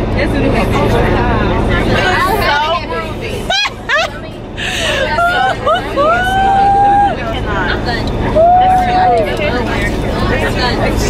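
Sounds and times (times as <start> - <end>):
bus engine rumble: 0.0 - 11.0
women chattering: 0.0 - 11.0.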